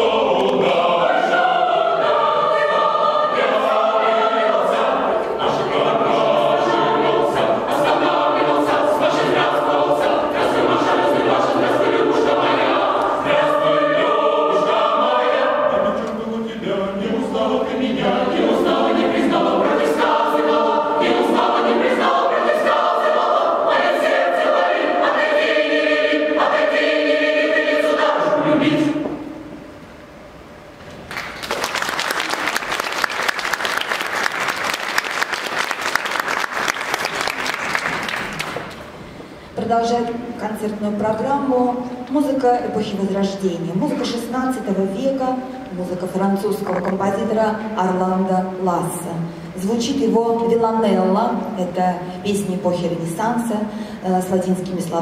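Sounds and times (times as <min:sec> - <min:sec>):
mixed choir singing: 0:00.0 - 0:29.6
audience clapping: 0:31.0 - 0:38.8.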